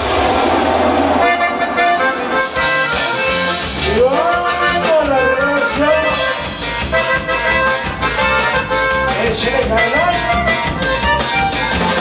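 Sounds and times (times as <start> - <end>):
live band playing upbeat music: 0.0 - 12.0
accordion: 1.2 - 12.0.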